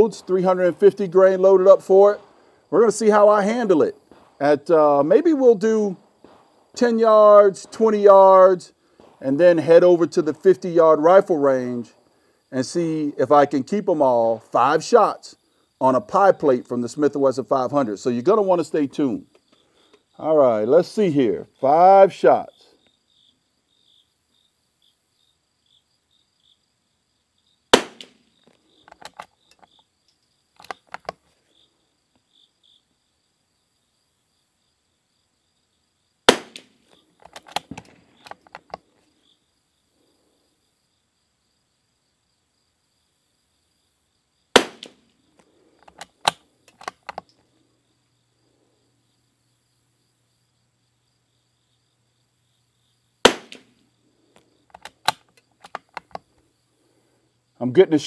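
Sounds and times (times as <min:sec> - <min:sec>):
insects chirping: 0:00.0 - 0:58.0
rifle shots: 0:04.1 - 0:04.5, 0:06.2 - 0:07.8, 0:27.7 - 0:28.2, 0:36.3 - 0:36.8, 0:44.6 - 0:45.0, 0:53.2 - 0:53.8
rifle bolt clicking: 0:28.9 - 0:29.7, 0:30.6 - 0:31.2, 0:37.2 - 0:38.8, 0:45.8 - 0:47.3, 0:54.7 - 0:56.2.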